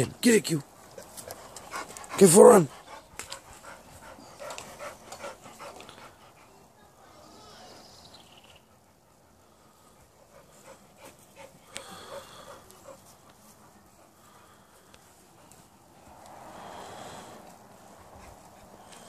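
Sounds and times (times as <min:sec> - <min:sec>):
dog panting: 0:00.0 - 0:07.2, 0:08.6 - 0:16.1, 0:16.7 - 0:19.0.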